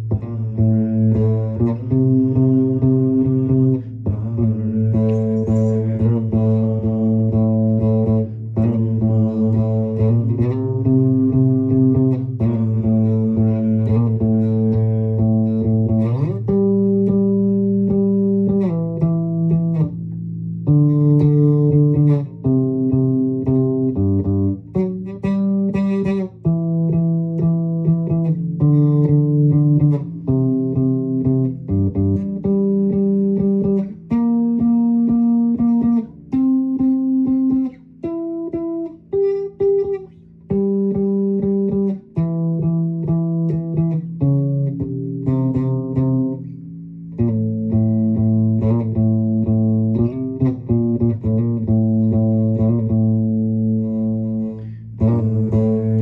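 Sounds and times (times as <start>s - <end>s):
electric bass guitar melody: 0.0s - 56.0s.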